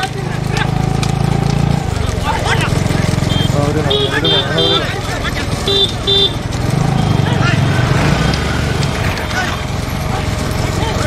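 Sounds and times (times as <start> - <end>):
hoofbeats on tarmac: 0.0 - 11.0
men shouting: 0.0 - 11.0
motorcycles running: 0.0 - 11.0.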